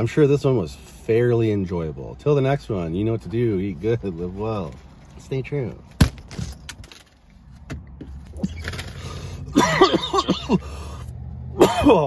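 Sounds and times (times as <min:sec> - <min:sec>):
man coughing: 0:09.5 - 0:10.8, 0:11.6 - 0:12.0.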